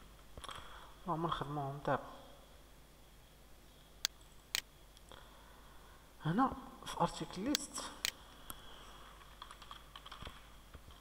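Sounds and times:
computer keyboard keystrokes: 0:09.2 - 0:11.0.

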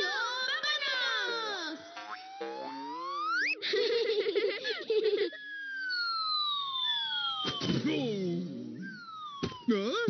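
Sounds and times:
descending cartoon whistle: 0:01.4 - 0:03.6, 0:05.3 - 0:10.0
thud: 0:07.4 - 0:08.0, 0:09.4 - 0:09.7.

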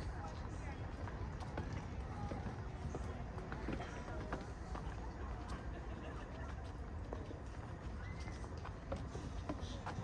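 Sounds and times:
footsteps on stone path: 0:00.0 - 0:10.0.

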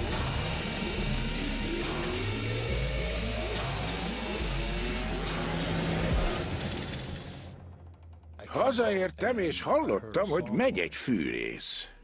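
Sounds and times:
power drill motor whine: 0:00.0 - 0:07.5
dark background music: 0:00.0 - 0:12.0.

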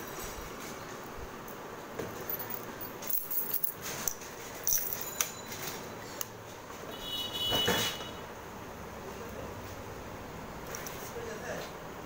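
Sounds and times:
keys jangling and clicking: 0:02.2 - 0:05.8.

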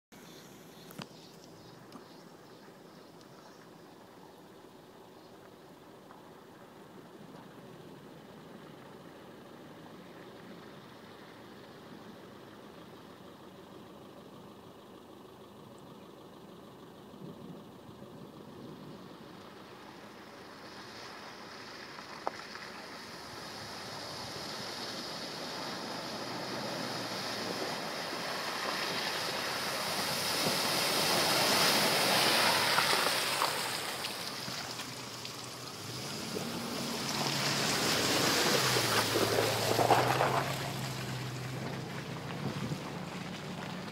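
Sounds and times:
car engine: 0:00.0 - 0:43.9
water splashing under wheels: 0:19.2 - 0:43.9.

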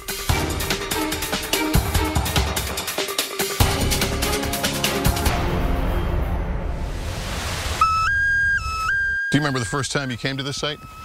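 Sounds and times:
low rumbling music: 0:00.0 - 0:07.6
whistle-like tone: 0:07.8 - 0:11.0.

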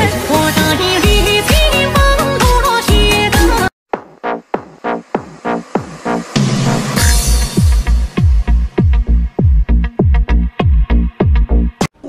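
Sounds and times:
electronic dance music: 0:00.0 - 0:11.6
heavy bass kick drum: 0:01.0 - 0:11.8
short sharp hit: 0:04.0 - 0:08.8.

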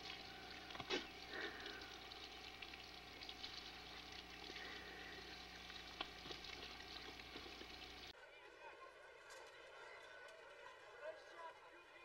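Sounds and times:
steady low hum: 0:00.0 - 0:08.1
tape crackle and hiss: 0:00.0 - 0:08.1.

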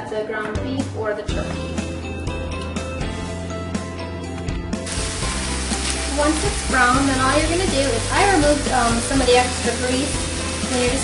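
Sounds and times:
background music: 0:00.0 - 0:11.0
meat sizzling in a skillet: 0:04.8 - 0:11.0.

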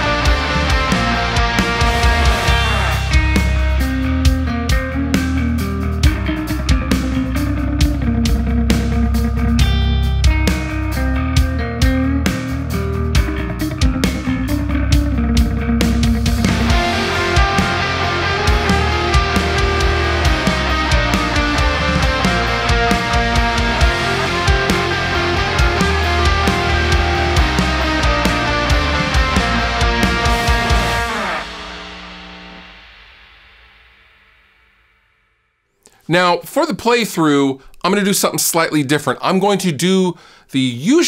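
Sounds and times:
drum hits: 0:00.0 - 0:12.6, 0:13.2 - 0:34.9
electric guitar rock tune: 0:00.0 - 0:34.4.

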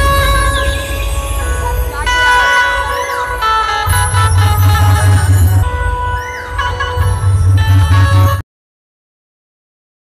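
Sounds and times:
loud amplified music: 0:00.0 - 0:08.4.

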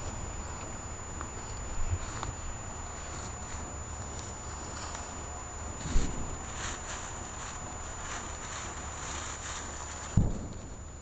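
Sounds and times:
plastic bag rustling: 0:05.8 - 0:10.8.

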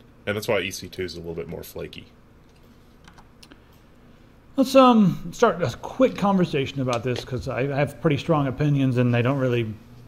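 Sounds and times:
computer keys clicking: 0:02.5 - 0:03.8.

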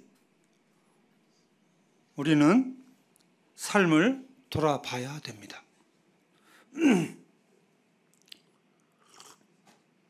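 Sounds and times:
soft breath: 0:06.3 - 0:06.8
man's short vocal sound: 0:06.7 - 0:07.2.

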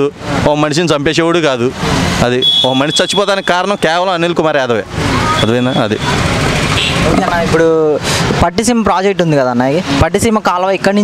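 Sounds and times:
man talking into microphone: 0:00.0 - 0:06.1
short high beep: 0:05.3 - 0:06.2.

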